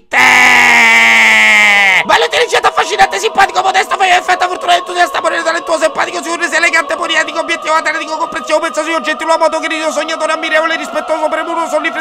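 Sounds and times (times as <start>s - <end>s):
voice holding long vowel: 0.0s - 12.0s.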